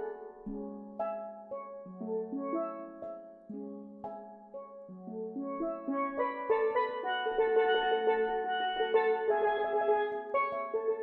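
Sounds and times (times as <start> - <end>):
steelpans playing a melody: 0.0 - 11.0.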